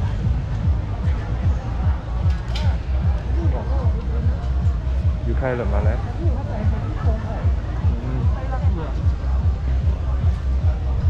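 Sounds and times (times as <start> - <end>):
music with deep bass beat: 0.0 - 11.0.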